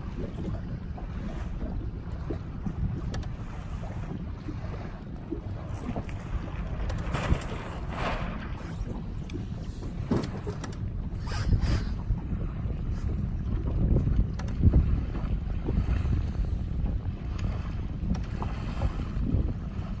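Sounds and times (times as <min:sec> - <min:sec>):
water washing around boat: 0:00.0 - 0:20.0
wind buffeting microphone: 0:00.0 - 0:20.0.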